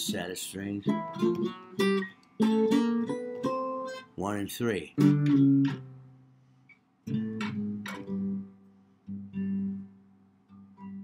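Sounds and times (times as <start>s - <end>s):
jazz guitar picked octaves: 0.0s - 4.2s, 4.9s - 6.3s, 7.0s - 11.0s.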